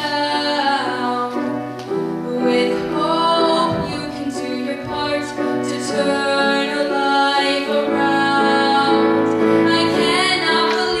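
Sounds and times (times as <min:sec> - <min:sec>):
instrumental accompaniment: 0:00.0 - 0:11.0
girl singing: 0:02.2 - 0:11.0.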